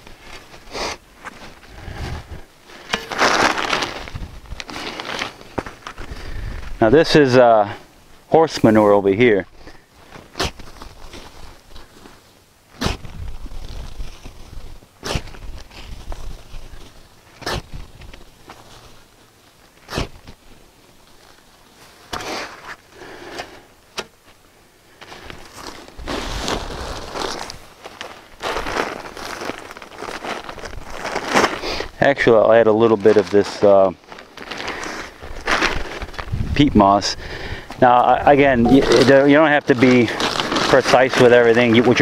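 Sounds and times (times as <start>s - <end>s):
rough scraping and rustling: 0.0s - 42.0s
shovel knocking and scraping: 2.8s - 4.0s, 38.6s - 39.3s.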